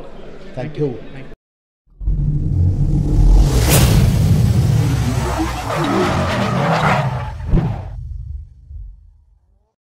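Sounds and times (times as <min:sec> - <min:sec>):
low rumble: 0:01.9 - 0:06.6, 0:07.3 - 0:09.3
whoosh: 0:01.9 - 0:09.1
sharp hit: 0:02.0 - 0:06.0.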